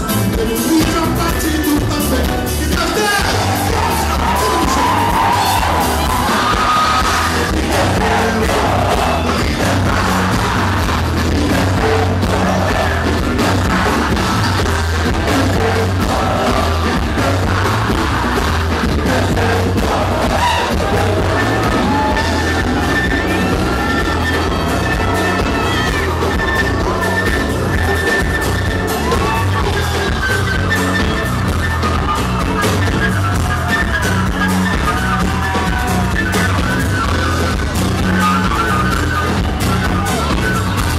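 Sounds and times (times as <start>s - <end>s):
crowd yelling and singing along: 0.0s - 40.9s
lead singing: 0.0s - 40.9s
live band playing pop song: 0.0s - 40.9s.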